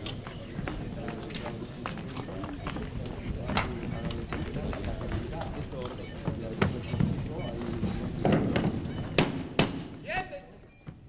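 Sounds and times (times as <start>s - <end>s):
footsteps on a stage: 0.0s - 11.0s.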